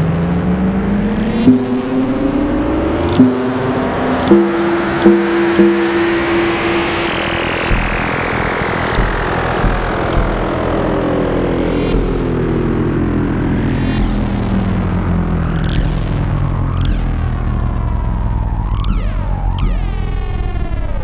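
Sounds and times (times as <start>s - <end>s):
synthesizer drone: 0.0s - 21.0s
noisy synth texture with pitch glides: 0.7s - 19.8s
deep low rumble: 1.5s - 16.5s
clicks: 3.0s - 8.1s.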